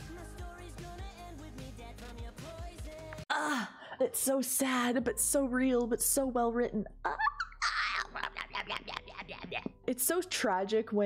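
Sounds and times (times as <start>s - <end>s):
pop song with bass and vocals: 0.0s - 3.7s
person sighing: 3.3s - 4.0s.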